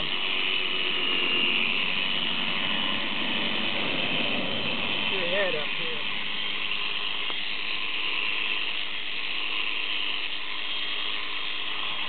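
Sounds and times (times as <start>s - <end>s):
shearing handpiece buzzing: 0.0s - 12.0s.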